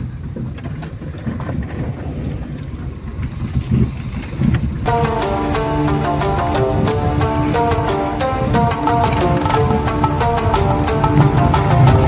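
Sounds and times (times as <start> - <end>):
music: 4.9 - 12.0.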